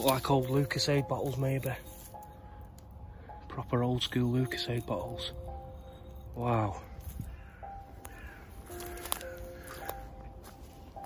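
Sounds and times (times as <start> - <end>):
music with long held notes: 0.0 - 11.0
bird calling: 5.8 - 11.0.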